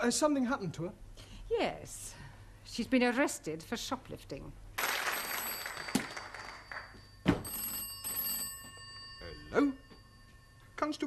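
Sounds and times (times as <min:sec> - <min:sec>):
telephone bell ringing: 0:05.1 - 0:11.0.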